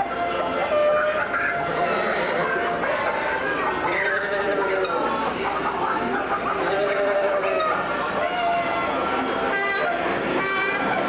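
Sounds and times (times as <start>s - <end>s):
overlapping pitched voices: 0.0s - 11.0s.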